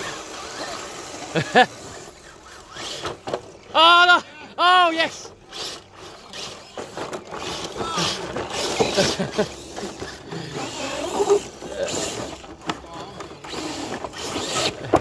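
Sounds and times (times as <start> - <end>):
toy trucks clicking and knocking: 0.0 - 4.2, 4.8 - 15.0
electric motors and gearboxes whining: 0.0 - 15.0.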